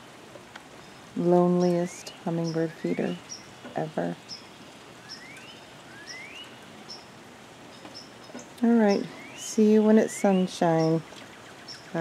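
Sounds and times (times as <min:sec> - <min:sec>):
faint steady hiss: 0:00.0 - 0:12.0
high bird chirps: 0:04.3 - 0:07.1
bird whistling: 0:05.0 - 0:06.6.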